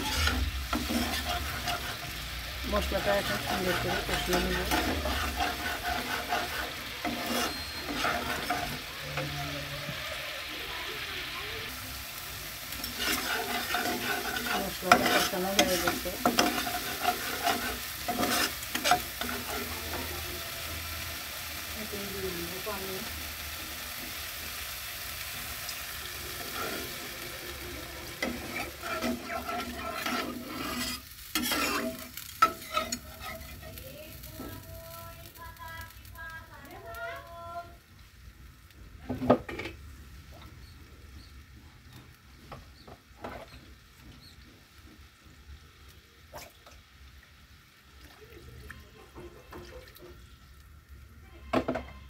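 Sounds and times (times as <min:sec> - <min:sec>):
metal spatula scraping pan: 0:00.0 - 0:10.0, 0:12.7 - 0:20.6, 0:26.2 - 0:34.6
paste sizzling in a pan: 0:00.0 - 0:52.0.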